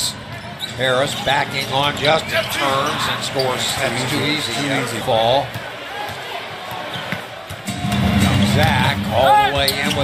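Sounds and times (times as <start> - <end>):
arena crowd noise: 0.0 - 10.0
arena music: 7.6 - 10.0.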